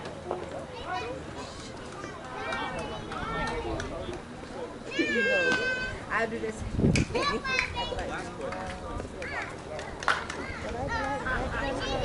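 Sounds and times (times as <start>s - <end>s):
people calling out and chattering: 0.0s - 12.0s.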